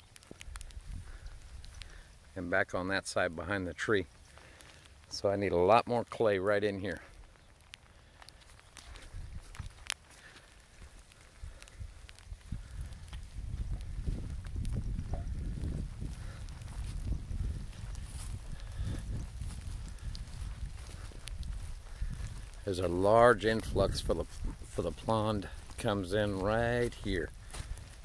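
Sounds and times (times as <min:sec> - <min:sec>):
footsteps on wet muddy grass: 0:00.0 - 0:28.0
light clicks: 0:07.1 - 0:13.9
low microphone rumble: 0:12.4 - 0:28.0.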